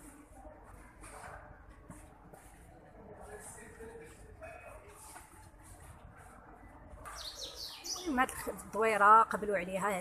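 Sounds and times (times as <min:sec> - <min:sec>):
bird chirping: 0:07.1 - 0:08.3.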